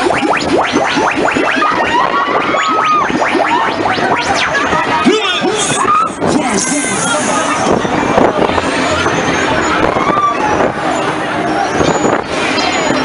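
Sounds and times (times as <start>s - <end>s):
riders' voices and shrieks: 1.5s - 3.8s, 4.4s - 13.0s.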